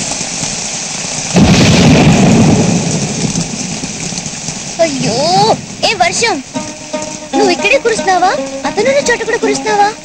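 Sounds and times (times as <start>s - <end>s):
loud rumbling thunderclap: 0.0s - 6.5s
heavy rain falling: 0.0s - 10.0s.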